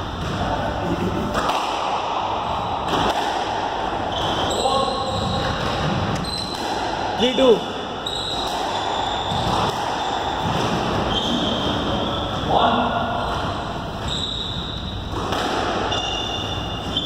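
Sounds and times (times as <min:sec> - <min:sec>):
squash ball struck and bouncing: 0:01.3 - 0:04.5, 0:05.2 - 0:07.2, 0:08.3 - 0:11.9, 0:13.3 - 0:17.0.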